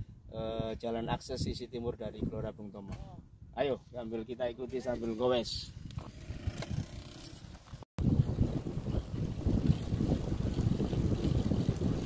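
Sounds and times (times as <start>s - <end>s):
wind buffeting microphone: 8.0s - 12.0s.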